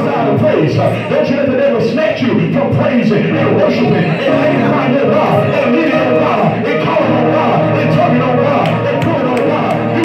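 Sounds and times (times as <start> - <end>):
guitar: 0.0 - 10.0
live band music: 0.0 - 10.0.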